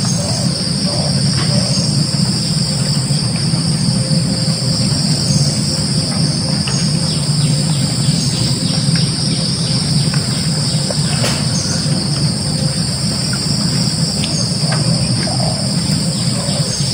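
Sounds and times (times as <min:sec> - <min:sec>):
insects buzzing: 0:00.0 - 0:16.9
low hum: 0:00.0 - 0:16.9.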